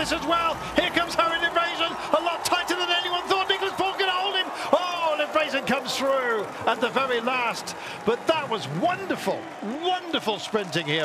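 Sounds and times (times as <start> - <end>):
man commentating: 0.0 - 11.0.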